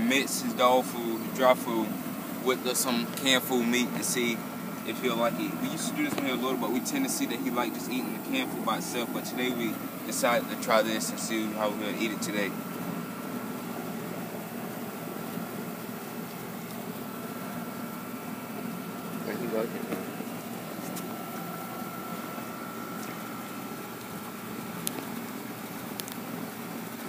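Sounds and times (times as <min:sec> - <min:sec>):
steady background hum: 0:00.0 - 0:27.0.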